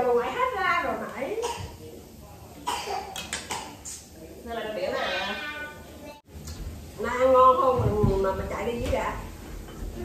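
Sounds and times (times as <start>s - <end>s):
woman coughing: 2.7s - 3.7s.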